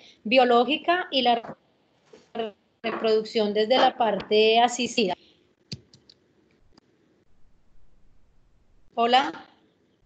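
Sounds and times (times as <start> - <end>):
person speaking: 2.2 - 6.1.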